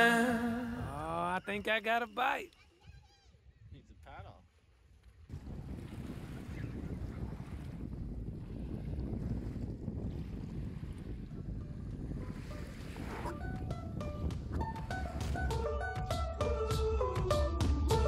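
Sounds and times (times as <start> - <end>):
small waves washing on shore: 4.4 - 11.5, 12.2 - 13.7
wind buffeting microphone: 5.2 - 16.3
music with stepped notes: 13.4 - 18.0.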